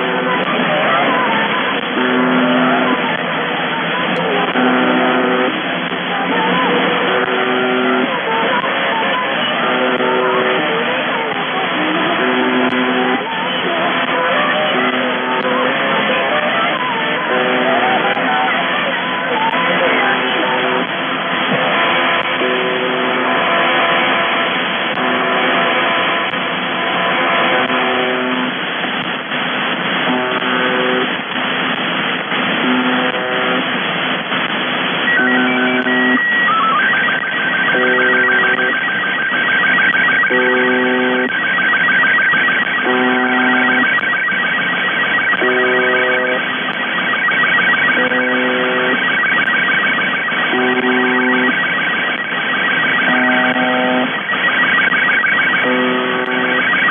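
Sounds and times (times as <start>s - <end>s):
high leader tone: 0.0s - 28.6s, 32.6s - 56.9s
low radio buzz: 0.0s - 56.9s
radio hiss and interference: 0.0s - 56.9s
warbling image tones: 35.0s - 56.9s.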